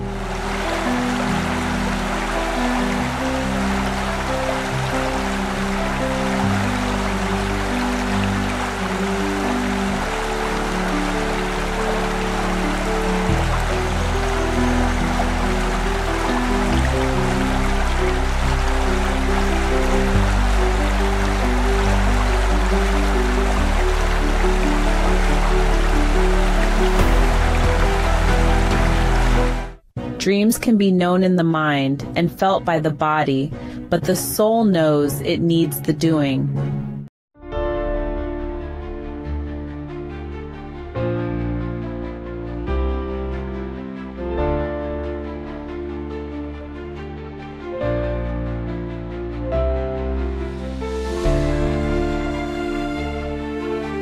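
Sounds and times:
flowing river water: 0:00.0 - 0:29.8, 0:51.2 - 0:54.0
slow ambient music chords: 0:00.0 - 0:29.8, 0:37.4 - 0:54.0.

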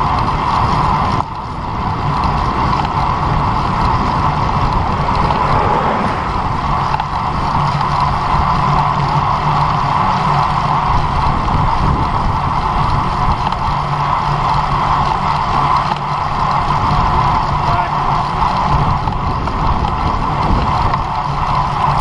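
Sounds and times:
constant low hum: 0:00.0 - 0:22.0
tyre road noise: 0:00.0 - 0:22.0
wind rushing: 0:01.5 - 0:08.6.

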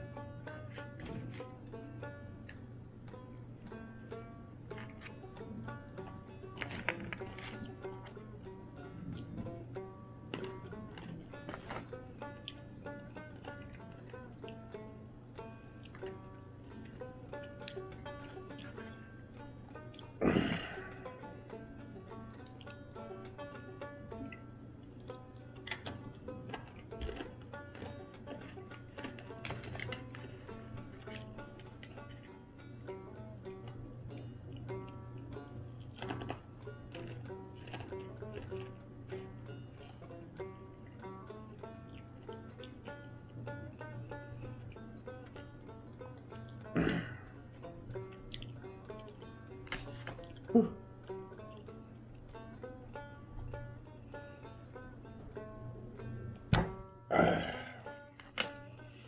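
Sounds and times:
banjo music: 0:00.0 - 0:59.0
low hum: 0:00.0 - 0:59.0.

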